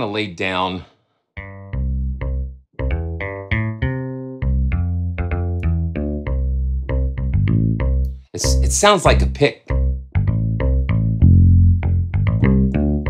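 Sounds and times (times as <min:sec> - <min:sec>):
electric bass notes: 0:01.4 - 0:13.0.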